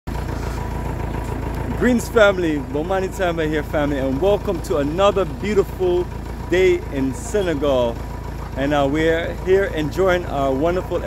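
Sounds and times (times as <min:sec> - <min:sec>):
vehicle engine idling: 0:00.1 - 0:11.0.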